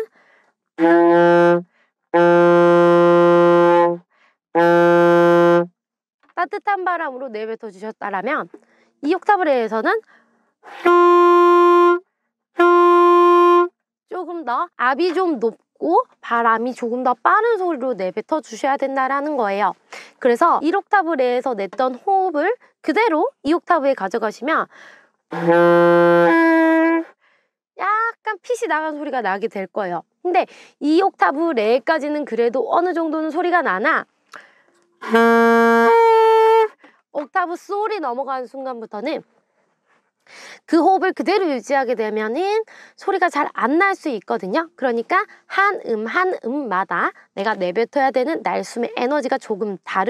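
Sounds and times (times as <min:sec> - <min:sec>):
short breath: 0:00.1 - 0:00.6, 0:01.7 - 0:02.0, 0:04.1 - 0:04.4, 0:08.6 - 0:09.0, 0:10.0 - 0:10.8, 0:19.9 - 0:20.2, 0:24.7 - 0:25.2, 0:27.1 - 0:27.6, 0:30.5 - 0:30.8, 0:34.3 - 0:34.9, 0:36.8 - 0:37.1, 0:39.4 - 0:40.7, 0:42.7 - 0:43.0
saxophone held notes: 0:00.8 - 0:01.6, 0:02.2 - 0:04.0, 0:10.7 - 0:12.0, 0:12.6 - 0:13.7, 0:25.3 - 0:27.1, 0:35.0 - 0:36.8
alto saxophone holding a note: 0:10.7 - 0:12.0, 0:12.6 - 0:13.7, 0:35.0 - 0:36.7.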